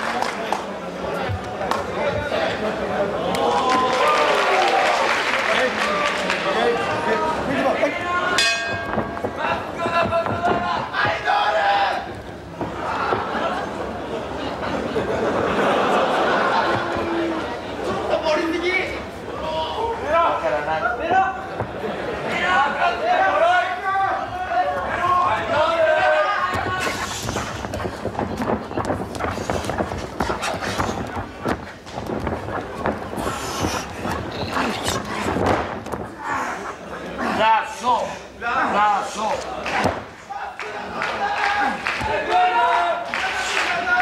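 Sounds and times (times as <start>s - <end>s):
arena crowd noise: 0.0s - 44.0s
wrestlers knocking on ring canvas: 8.4s - 11.6s, 26.5s - 36.2s.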